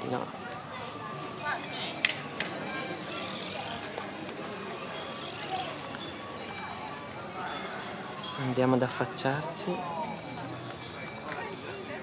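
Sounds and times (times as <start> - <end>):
voices of passers-by: 0.0 - 12.0.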